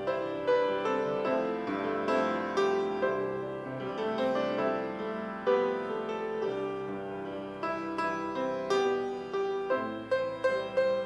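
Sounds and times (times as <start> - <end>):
piano playing slow chords: 0.0 - 11.0.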